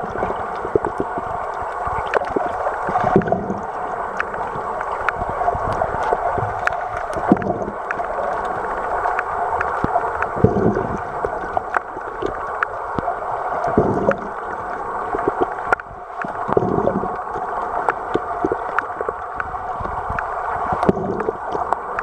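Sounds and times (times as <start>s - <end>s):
muffled rush of water: 0.0s - 22.0s
sharp clicks underwater: 0.0s - 22.0s.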